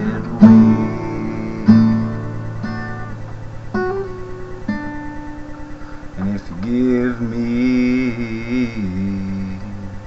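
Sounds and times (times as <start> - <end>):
acoustic guitar strums: 0.0 - 10.0.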